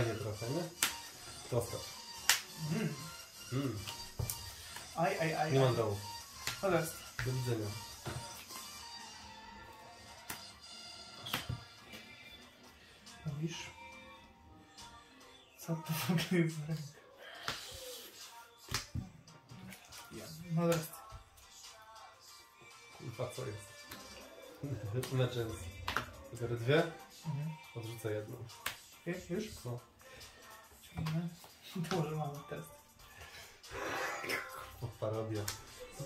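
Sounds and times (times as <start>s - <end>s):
person muttering: 2.6s - 4.0s, 33.7s - 34.9s
person exhaling loudly: 33.7s - 34.6s.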